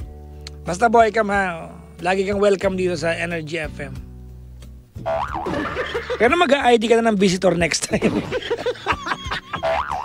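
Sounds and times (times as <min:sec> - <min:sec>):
background music low notes: 0:00.0 - 0:10.0.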